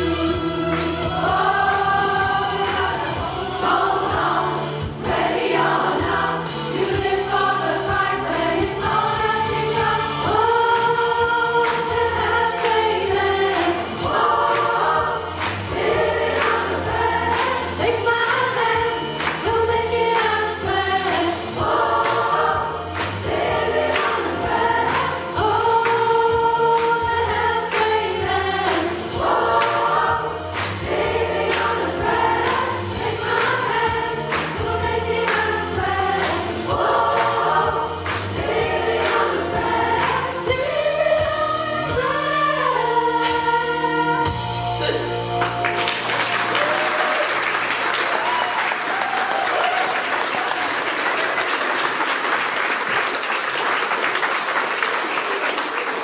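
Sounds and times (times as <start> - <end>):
choir singing: 0.0 - 45.1.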